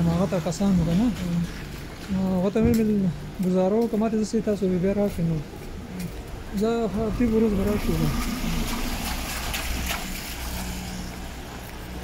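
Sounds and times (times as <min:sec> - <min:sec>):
traffic rumble: 0:00.0 - 0:12.0
tyres hissing on wet road: 0:07.1 - 0:12.0.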